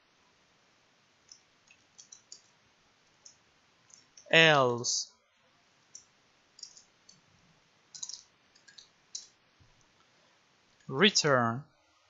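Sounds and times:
computer keyboard keystrokes: 1.3 - 2.5, 6.0 - 7.2, 7.9 - 9.3.

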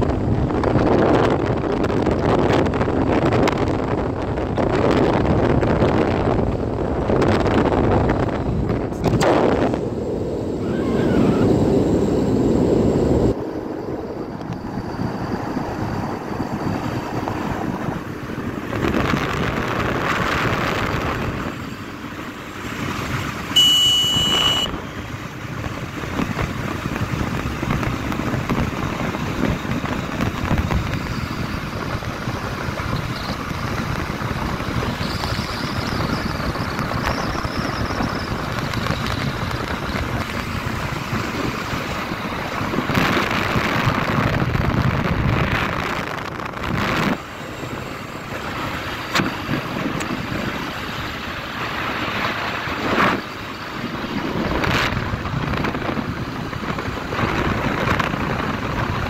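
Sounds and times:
wind buffeting microphone: 0.0 - 23.6, 24.6 - 59.0
motorcycle engine and road noise: 0.0 - 59.0
brief high tone: 23.6 - 24.8.

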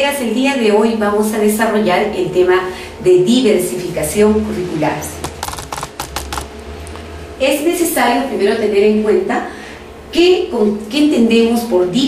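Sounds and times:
steady low hum: 0.6 - 12.0
sharp clicks: 5.2 - 6.5.

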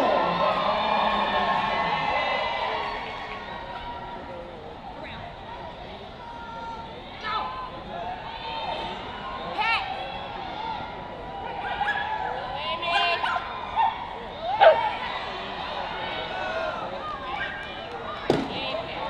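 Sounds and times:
indoor arena background noise: 0.0 - 19.0
small dog barking: 14.6 - 14.9.

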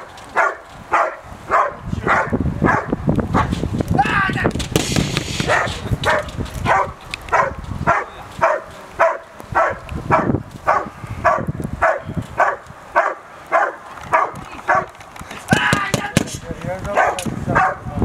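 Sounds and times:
dog barking: 0.4 - 3.5, 5.4 - 14.9, 16.9 - 17.9.

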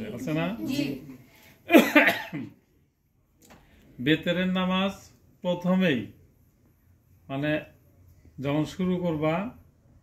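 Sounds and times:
person coughing harshly: 1.7 - 2.6.

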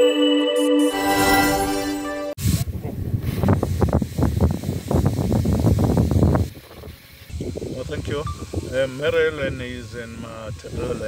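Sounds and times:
wind buffeting microphone: 2.4 - 11.0.

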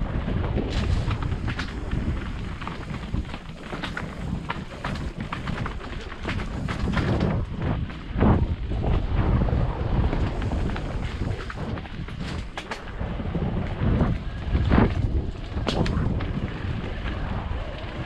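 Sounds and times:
motorcycle rattling over bumps: 0.0 - 18.0
wind buffeting microphone: 0.0 - 18.0.

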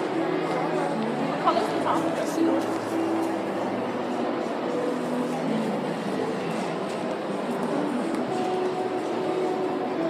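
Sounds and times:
indistinct crowd noise: 0.0 - 10.0.

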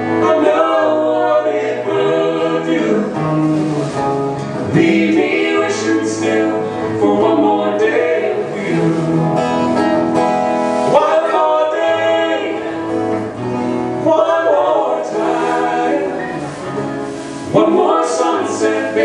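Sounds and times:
acoustic guitars strumming: 0.0 - 19.0
people singing: 0.0 - 19.0.

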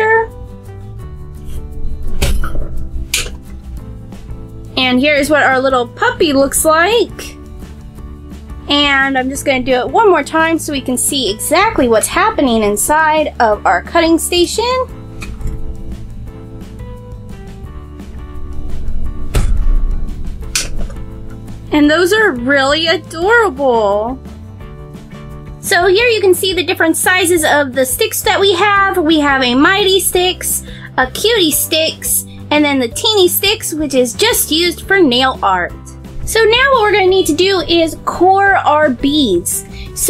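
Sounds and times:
background music: 0.0 - 40.0
high scraping snap: 18.7 - 21.5
plunger thump: 19.2 - 21.4.

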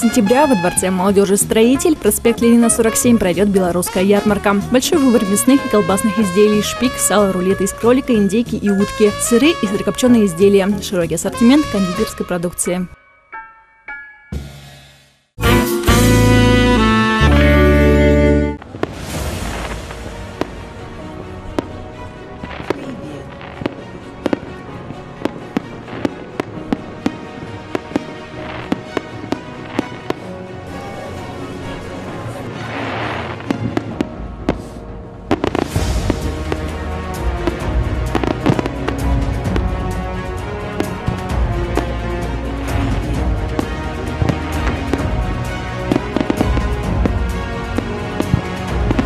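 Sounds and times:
background music: 0.0 - 49.0
fireworks bangs: 18.6 - 49.0
fireworks crackling: 18.6 - 49.0.

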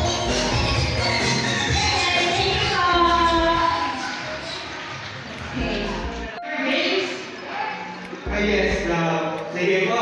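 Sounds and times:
man talking through microphone: 8.3 - 10.0.

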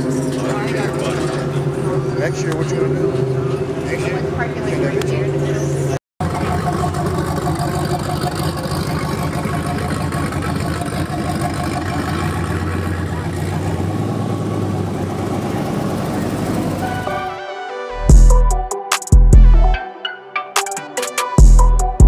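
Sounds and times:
people's voices: 0.0 - 6.0
car engines driving past: 0.0 - 17.3.

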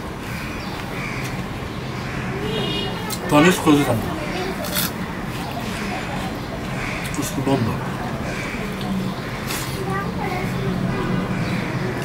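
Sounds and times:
steady background noise: 0.0 - 12.0
crow cawing: 0.2 - 3.1, 5.0 - 9.5, 10.9 - 12.0.

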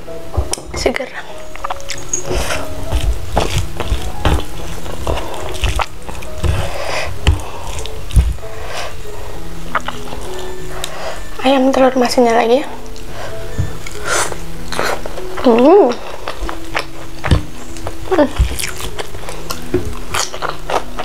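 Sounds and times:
soft background music: 0.0 - 21.0
fingers picking through food: 1.5 - 9.0, 9.7 - 11.0, 12.8 - 21.0.

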